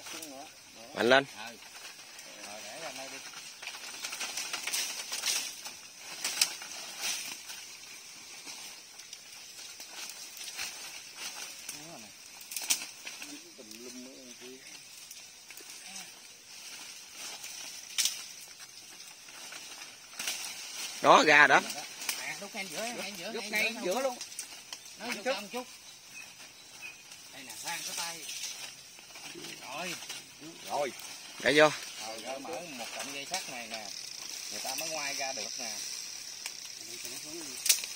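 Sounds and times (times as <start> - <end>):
vines and leaves rustling: 0.0 - 37.9
sharp snaps: 12.4 - 13.2, 36.4 - 37.9.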